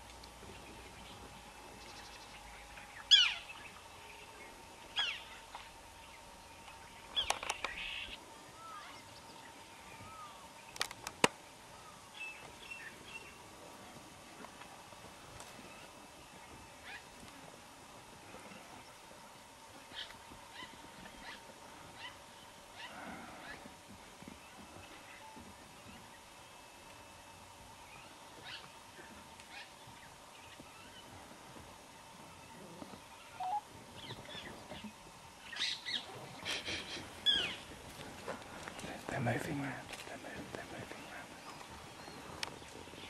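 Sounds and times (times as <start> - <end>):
faint outdoor ambience: 0.0 - 43.0.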